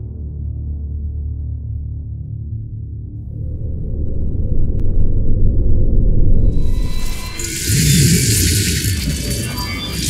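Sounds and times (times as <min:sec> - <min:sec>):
low rumble: 0:03.0 - 0:10.0
airy hiss sound effect: 0:06.7 - 0:10.0.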